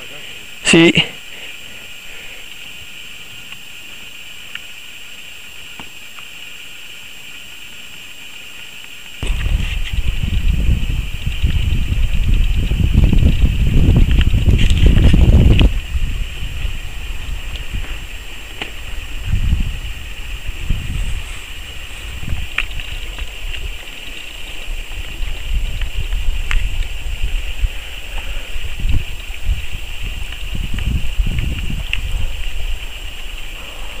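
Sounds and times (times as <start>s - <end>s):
wind buffeting microphone: 9.2s - 34.0s.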